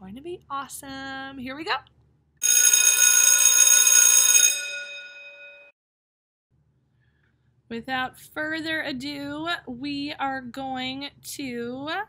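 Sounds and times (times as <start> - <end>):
electric bell ringing: 2.4 - 5.7.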